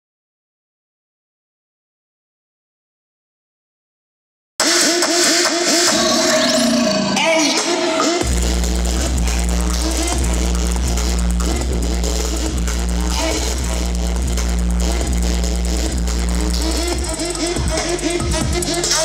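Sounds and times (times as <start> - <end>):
loud music with deep bass: 4.6 - 19.0.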